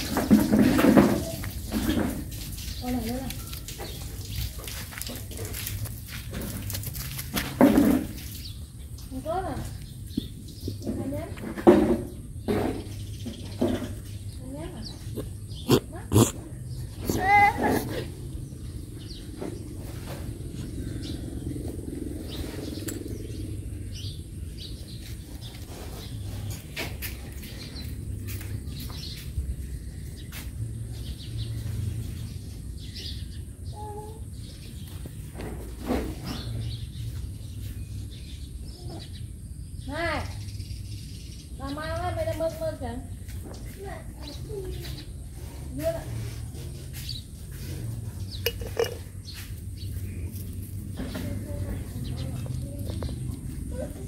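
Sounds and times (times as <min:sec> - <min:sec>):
young dogs growling: 0:14.9 - 0:19.2.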